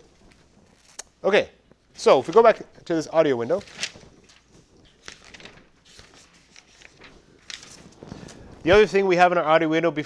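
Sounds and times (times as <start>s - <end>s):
paper notepad rustling: 1.9s - 9.1s.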